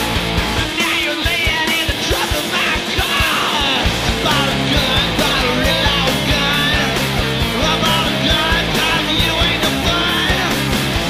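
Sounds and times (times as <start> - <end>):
fast drumbeat: 0.0 - 11.0
punk band playing: 0.0 - 11.0
yelled vocals: 0.0 - 11.0.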